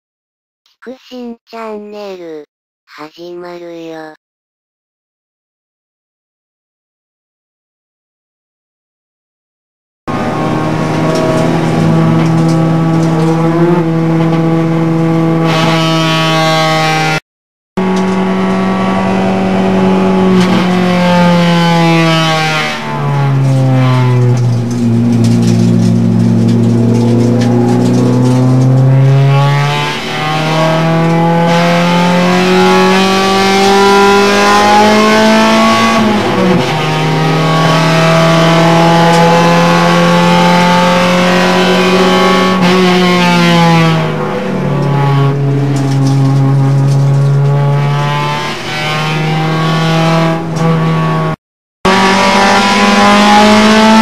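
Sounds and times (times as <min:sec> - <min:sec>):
car engine through gear changes: 0:10.1 - 0:17.2, 0:17.8 - 0:54.0.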